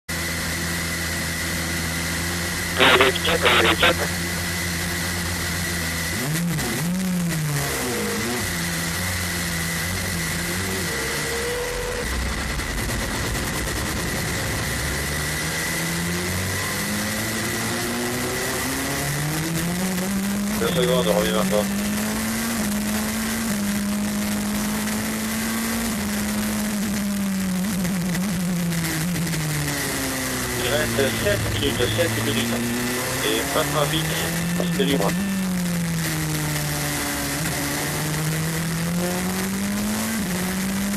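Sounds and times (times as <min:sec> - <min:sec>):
race car engine drone: 0:00.1 - 0:40.9.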